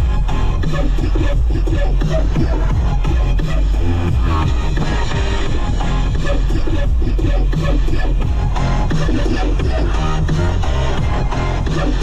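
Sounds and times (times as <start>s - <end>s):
electronic music with heavy bass: 0.0s - 12.0s.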